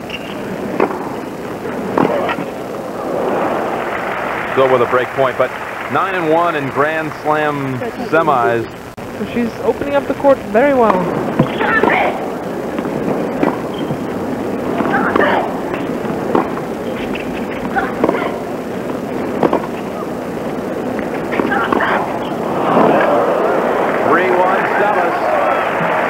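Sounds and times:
crowd murmur: 0.0 - 26.0
racket striking tennis ball: 19.3 - 19.8.

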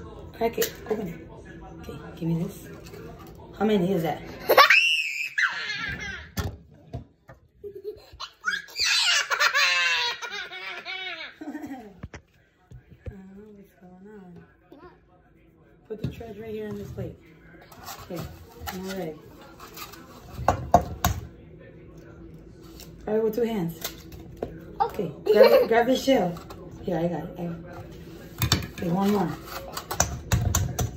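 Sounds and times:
girl squealing laugh: 4.5 - 6.3.

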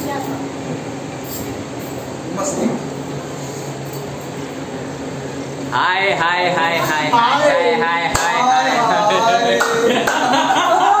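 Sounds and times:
sharp hand claps: 8.1 - 8.4, 9.6 - 10.4
men laughing and calling out: 8.4 - 11.0.

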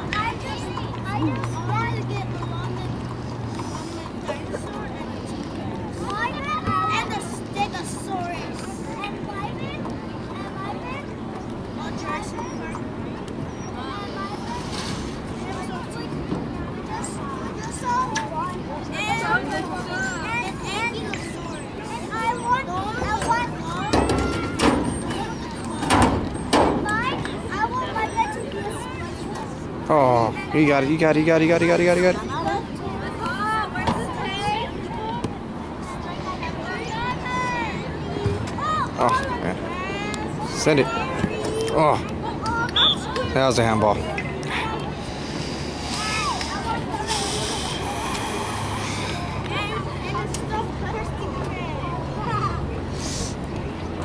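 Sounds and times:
voices shouting: 0.0 - 14.6, 15.2 - 54.0
distant shouts of players: 42.4 - 43.4
rising call: 42.7 - 43.2.

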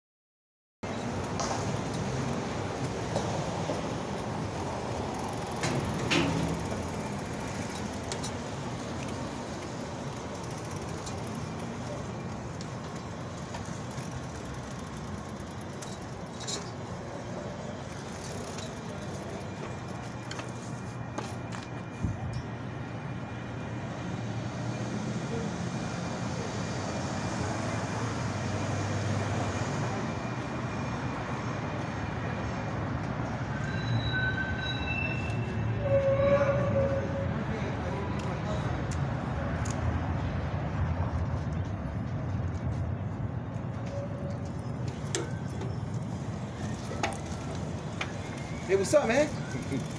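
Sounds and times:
passing cars: 0.8 - 49.9.

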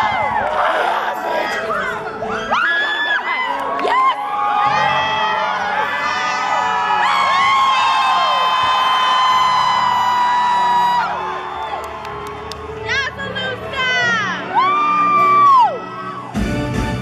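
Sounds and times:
audience cheering and screaming: 0.0 - 16.8.

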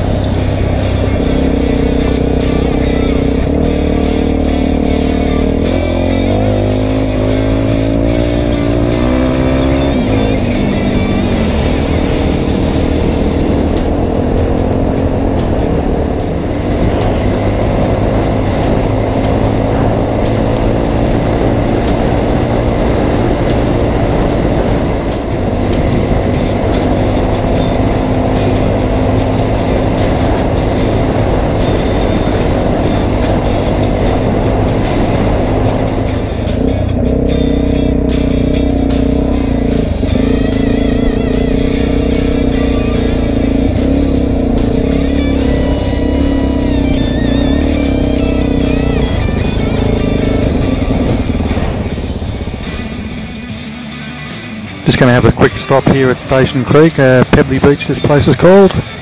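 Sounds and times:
background music: 0.0 - 59.0
motorcycle engine running: 0.0 - 59.0.

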